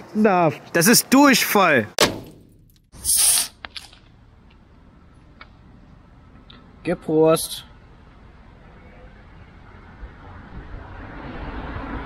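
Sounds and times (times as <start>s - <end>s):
can hissing open: 3.0s - 3.9s.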